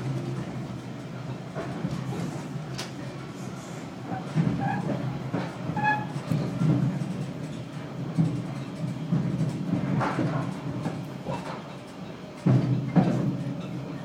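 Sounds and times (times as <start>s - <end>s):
train running rumble inside carriage: 0.0s - 14.0s.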